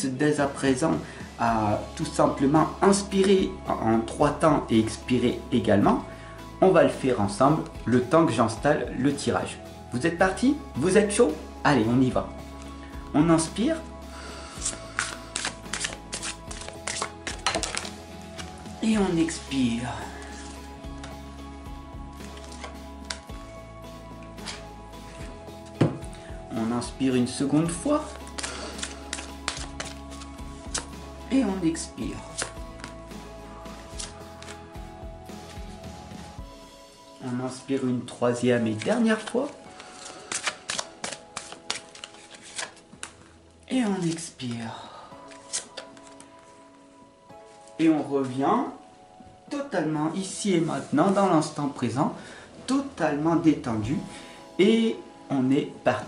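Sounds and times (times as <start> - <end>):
soft background music: 0.0 - 56.0
cards clicking and tapping: 14.6 - 18.6, 28.1 - 30.9, 32.3 - 33.0, 33.8 - 34.6, 38.8 - 43.3.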